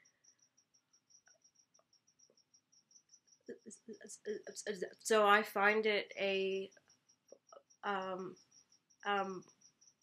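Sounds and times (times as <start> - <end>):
faint high-pitched chirp: 0.0 - 10.0.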